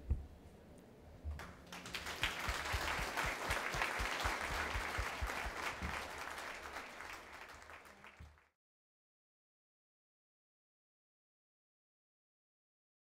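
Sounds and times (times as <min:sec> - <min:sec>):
audience applauding: 0:01.4 - 0:08.6.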